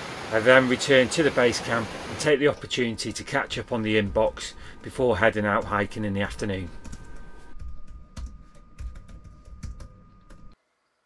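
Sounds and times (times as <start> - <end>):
laptop keyboard typing: 6.8 - 10.6.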